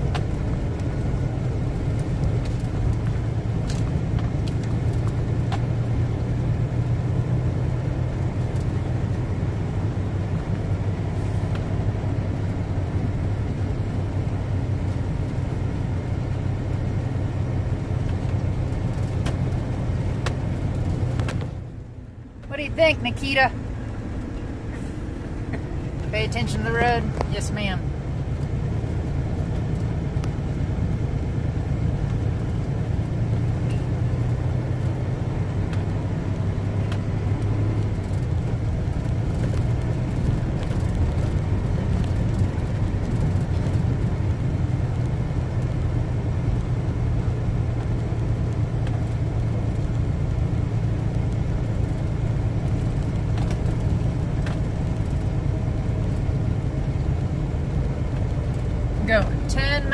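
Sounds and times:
diesel truck engine running: 0:00.0 - 0:59.9.

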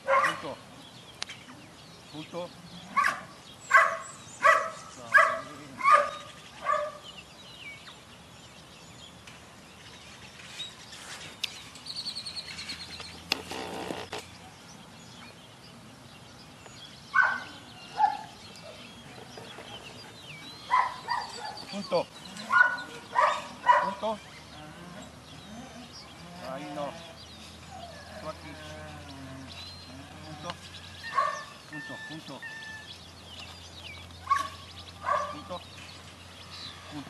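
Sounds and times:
dog barking sharply: 0:00.1 - 0:00.4, 0:03.0 - 0:07.0, 0:22.5 - 0:24.0.

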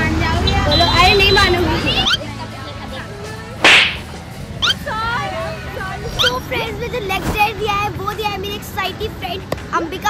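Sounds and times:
sharp whip-like swish: 0:03.6 - 0:04.1.

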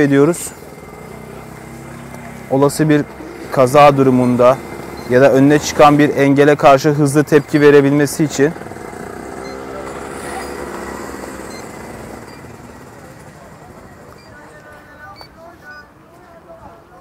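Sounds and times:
vehicle engine running: 0:00.0 - 0:15.7
distant voices: 0:00.0 - 0:17.0
faint short high beeps: 0:09.3 - 0:13.0, 0:13.8 - 0:15.9.

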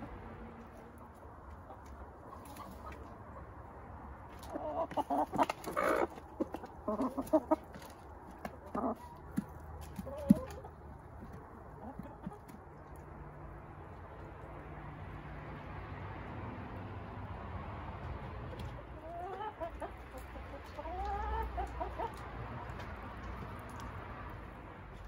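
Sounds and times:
chickens clucking: 0:00.6 - 0:14.4, 0:18.1 - 0:25.0.

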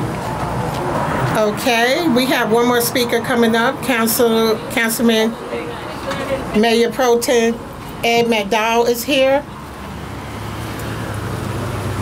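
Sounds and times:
vehicle engine hum: 0:07.6 - 0:12.0.

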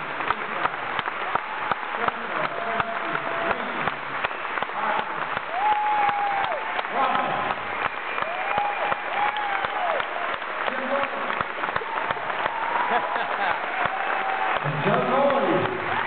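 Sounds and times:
audience clapping: 0:00.0 - 0:16.0
crowd whoops or whistles: 0:05.5 - 0:06.6, 0:07.8 - 0:10.3.

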